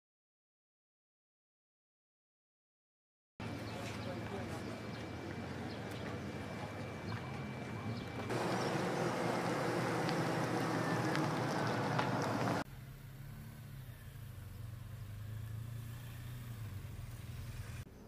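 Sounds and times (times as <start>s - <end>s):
motorcycle engine hum: 3.4s - 18.0s.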